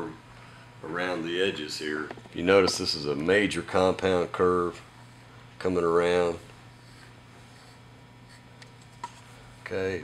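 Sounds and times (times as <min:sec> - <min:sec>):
low steady hum: 0:00.0 - 0:10.0
paintbrush scratching: 0:06.7 - 0:08.5.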